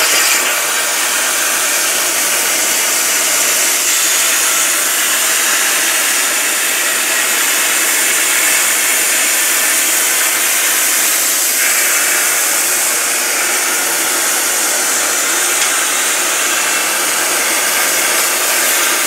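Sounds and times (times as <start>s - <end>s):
plasma cutter hissing: 0.0s - 19.0s.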